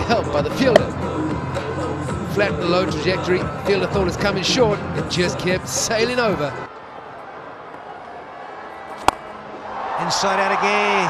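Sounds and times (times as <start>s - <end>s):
stadium crowd murmur: 6.1s - 11.0s
cricket bat hitting ball: 8.9s - 9.3s.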